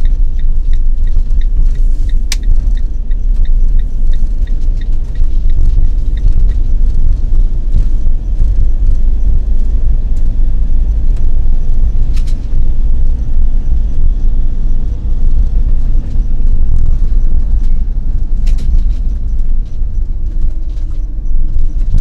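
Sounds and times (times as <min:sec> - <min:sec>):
vehicle engine and road noise: 0:00.0 - 0:22.0.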